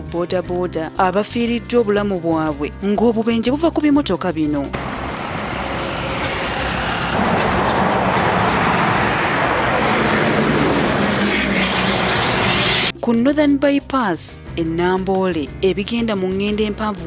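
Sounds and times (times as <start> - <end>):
trucks passing: 4.6 - 13.0
road noise rushing: 4.7 - 13.0.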